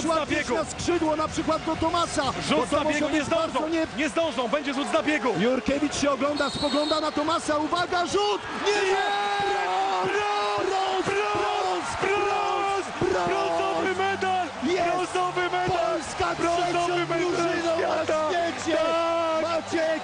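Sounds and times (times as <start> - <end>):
arena crowd cheering: 1.1 - 20.0.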